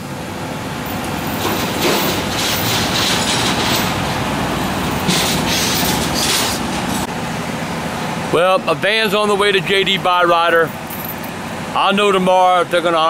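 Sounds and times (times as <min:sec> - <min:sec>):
tow truck driving past: 0:00.0 - 0:12.8.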